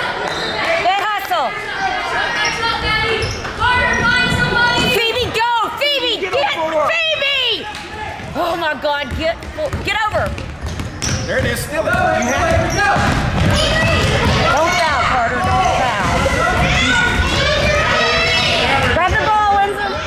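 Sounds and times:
basketball bouncing on wooden floor: 9.0s - 17.8s
voices calling out: 11.0s - 20.0s.

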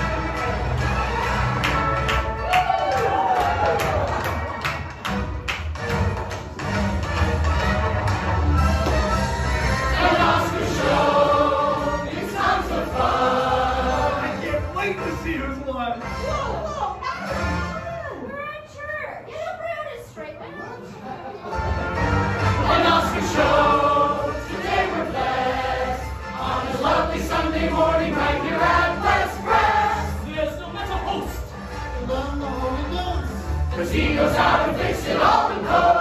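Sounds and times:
musical accompaniment: 0.0s - 18.3s, 21.3s - 36.0s
group singing in chorus: 9.6s - 14.4s, 22.3s - 30.3s, 33.7s - 36.0s.

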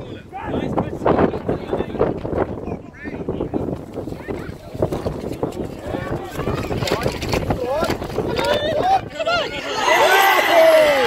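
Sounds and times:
wind rumbling on microphone: 0.0s - 11.0s
people shouting: 8.6s - 11.0s.

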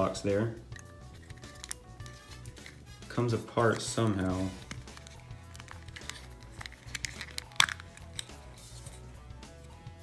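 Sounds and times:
faint background music: 0.0s - 10.0s
plastic clicks and creaks: 4.6s - 8.3s.

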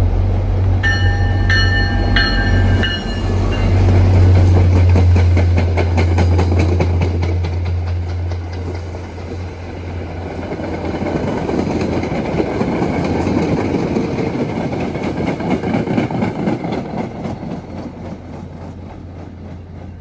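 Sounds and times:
diesel locomotive engine droning: 0.0s - 20.0s
train wheels clicking over rail joints: 0.2s - 20.0s.

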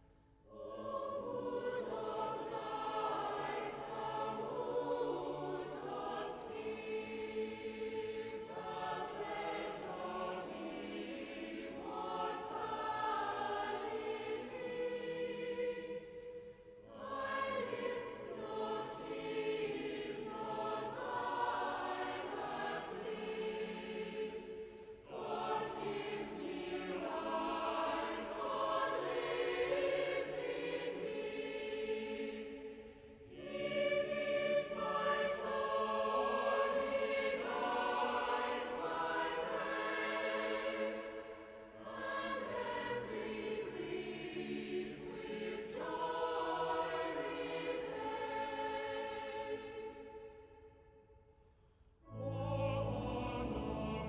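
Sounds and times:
choir singing sacred music: 0.0s - 54.0s.

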